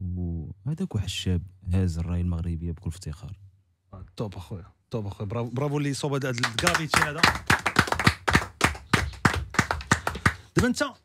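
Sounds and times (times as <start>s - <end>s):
hand clapping: 6.2s - 10.7s.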